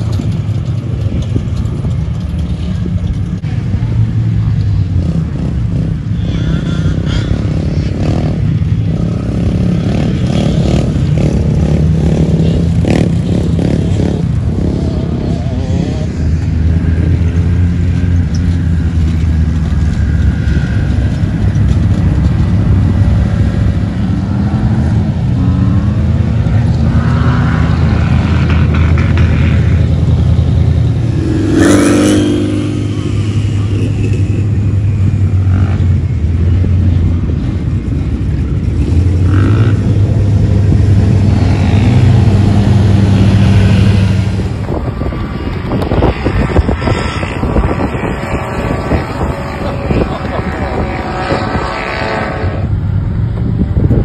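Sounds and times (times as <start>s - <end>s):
off-road vehicle engines revving: 0.0s - 54.0s.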